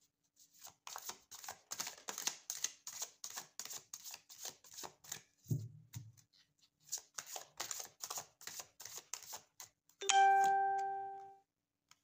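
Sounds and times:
cards being shuffled: 0.5 - 5.3, 6.8 - 9.7.

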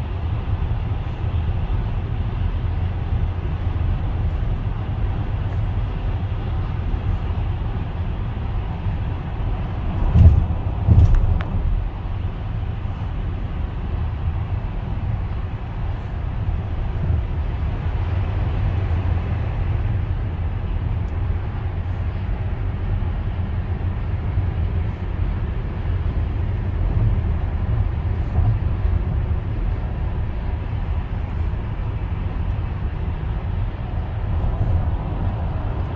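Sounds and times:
road and engine rumble in car: 0.0 - 35.9.

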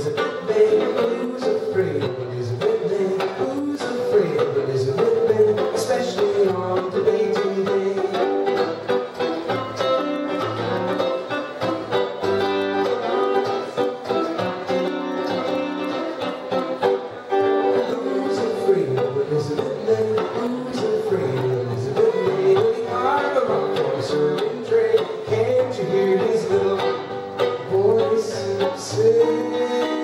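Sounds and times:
guitar chords: 0.0 - 30.0
bowed violin melody: 8.7 - 18.9.

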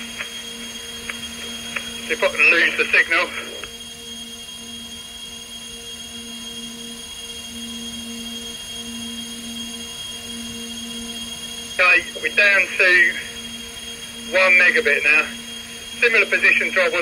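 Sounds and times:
faint high whine: 0.0 - 17.0
low electrical hum: 0.0 - 17.0.

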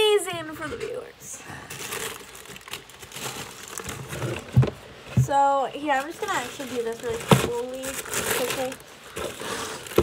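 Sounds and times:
tissue paper rustling: 1.6 - 4.6, 5.8 - 10.0
dull thump: 4.4 - 5.5.

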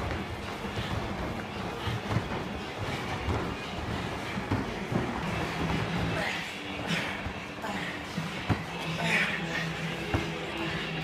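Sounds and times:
feet and bodies landing on mats: 0.0 - 9.2.

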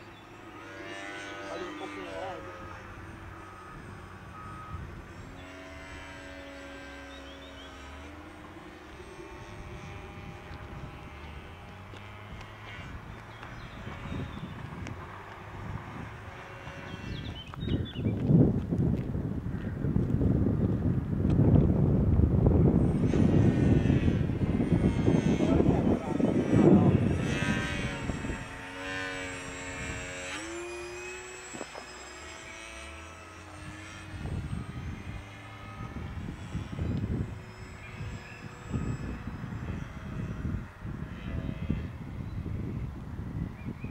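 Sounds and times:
electric propeller whine: 0.0 - 43.9.

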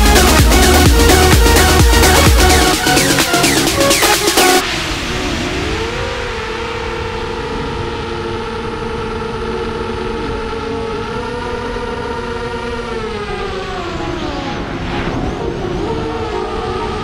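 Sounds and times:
quadcopter motors whining: 0.0 - 17.0.

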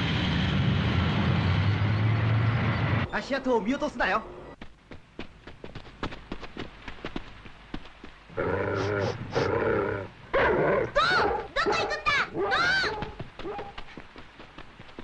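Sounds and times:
cartoon dog yelping: 10.9 - 13.2.

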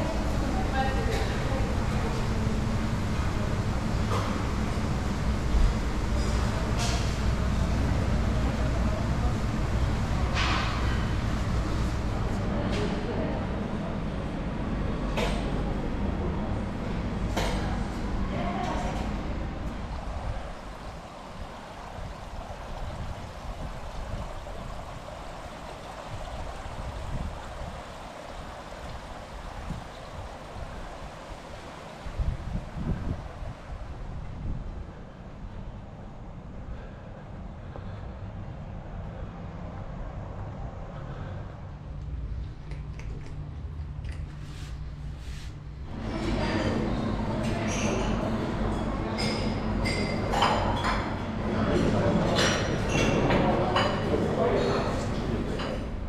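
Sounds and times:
outdoor hiss: 19.7 - 37.0
murmur of voices: 45.9 - 56.0.

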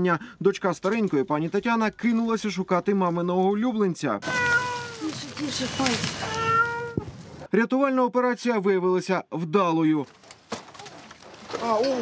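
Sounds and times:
cat meowing: 4.2 - 7.1.

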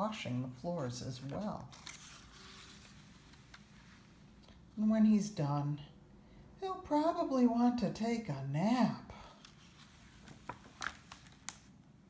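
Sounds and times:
paper page turning: 1.2 - 4.0, 9.4 - 11.8.

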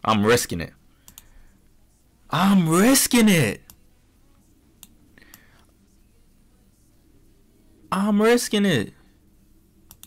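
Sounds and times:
computer mouse clicks: 1.0 - 1.3.

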